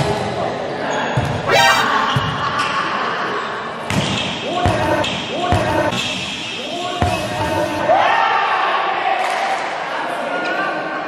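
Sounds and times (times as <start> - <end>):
voices echoing in a hall: 0.0 - 11.0
person shouting: 1.5 - 2.2.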